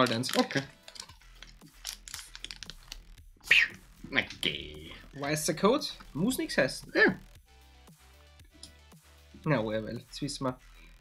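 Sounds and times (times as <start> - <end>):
foil wrapper crinkling: 0.0 - 3.2.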